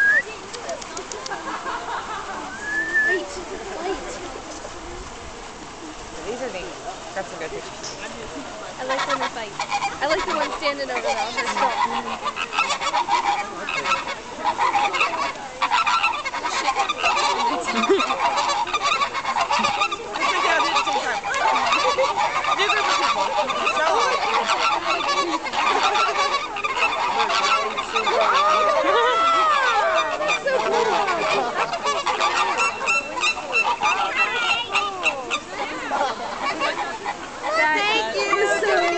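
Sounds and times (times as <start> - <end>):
flamingos honking: 0.0 - 38.9.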